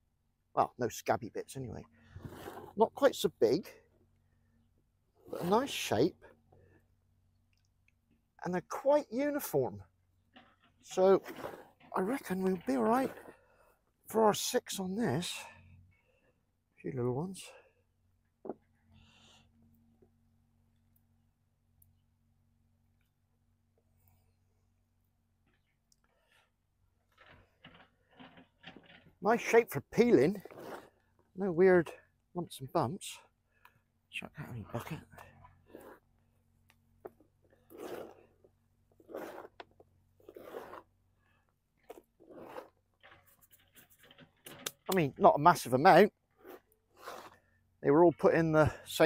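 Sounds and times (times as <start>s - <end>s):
hands sifting potting compost: 5.2s - 6.2s, 10.8s - 13.6s, 29.2s - 32.0s, 37.5s - 49.0s.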